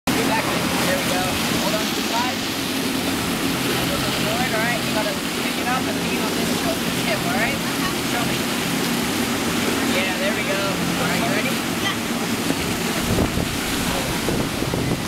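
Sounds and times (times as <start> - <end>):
water rushing: 0.0 - 15.0.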